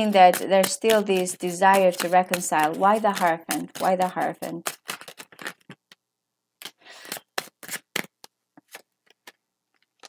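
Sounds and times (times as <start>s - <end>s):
cards sliding rustle: 4.6s - 5.8s, 6.6s - 9.4s.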